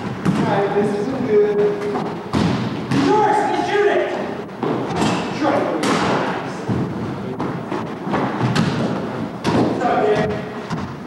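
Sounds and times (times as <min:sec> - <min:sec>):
players' voices: 0:00.3 - 0:02.2, 0:02.8 - 0:08.8, 0:09.5 - 0:10.6.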